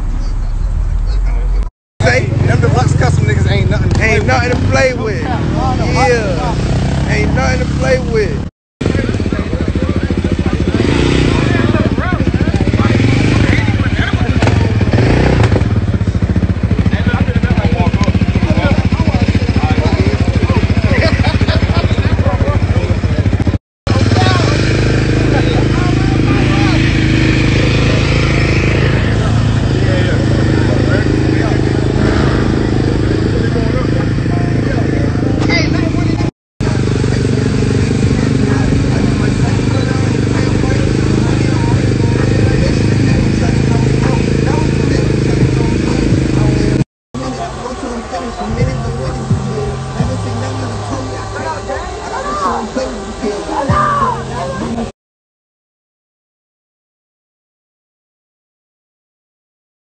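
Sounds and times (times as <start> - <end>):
crowd chatter: 0.0 - 54.9
vehicle engines running: 0.0 - 54.9.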